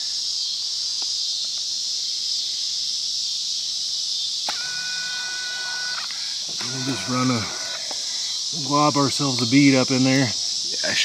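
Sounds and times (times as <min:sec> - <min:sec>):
high-pitched insect chorus: 0:00.0 - 0:11.0
steady multi-pitch squeal: 0:04.5 - 0:11.0.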